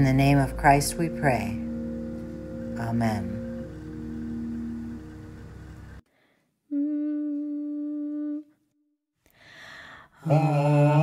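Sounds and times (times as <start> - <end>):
steady held note: 0.0 - 6.0.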